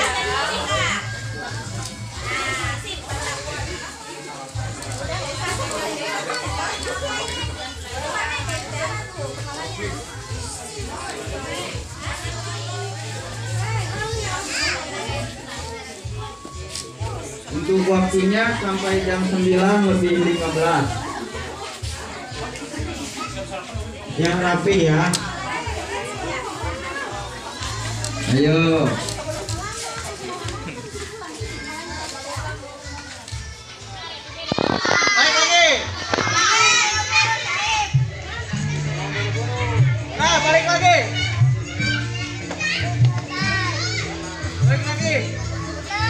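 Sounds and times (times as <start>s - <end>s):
background music with beat: 0.0s - 46.0s
children chattering and calling out: 0.0s - 46.0s
music with pulsing bass: 35.8s - 46.0s.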